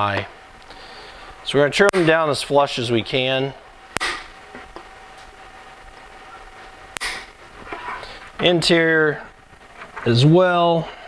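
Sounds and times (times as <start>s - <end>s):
wire cutters snipping metal: 7.0s - 7.3s.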